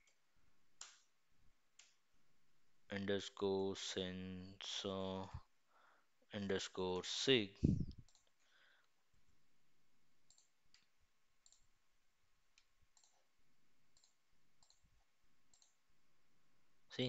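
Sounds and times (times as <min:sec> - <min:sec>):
mouse and keyboard clicks: 0:13.0 - 0:13.2.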